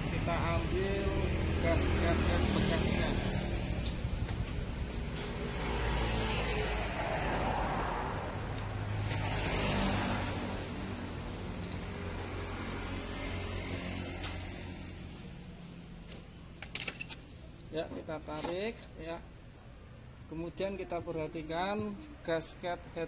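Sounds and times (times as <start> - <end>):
vehicle passing: 0.0 - 16.0
background traffic noise: 0.0 - 23.0.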